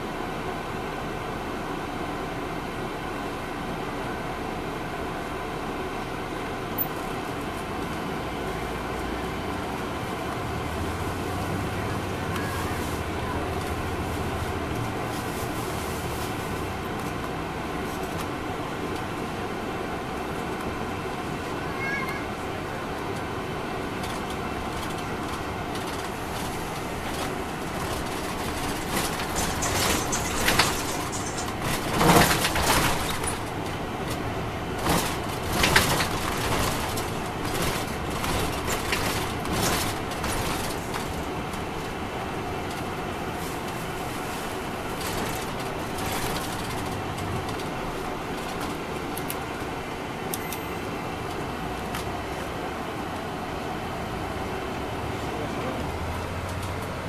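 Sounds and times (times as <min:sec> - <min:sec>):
bus diesel and road rumble: 0:00.0 - 0:57.0
rattles and knocks: 0:24.1 - 0:33.8, 0:34.8 - 0:41.4.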